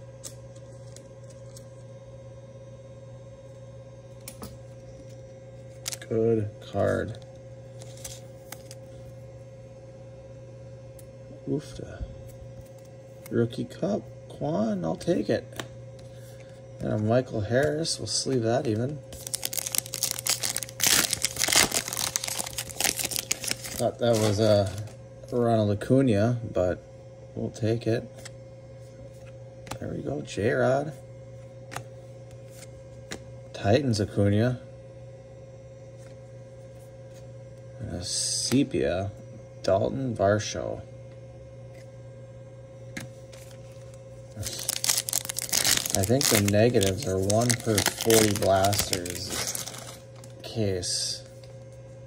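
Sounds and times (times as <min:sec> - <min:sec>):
steady low hum: 0:00.0 - 0:52.0
card sliding into plastic sleeve: 0:19.1 - 0:24.9, 0:43.0 - 0:50.0
foil wrapper crackling: 0:19.1 - 0:24.9, 0:43.4 - 0:50.4.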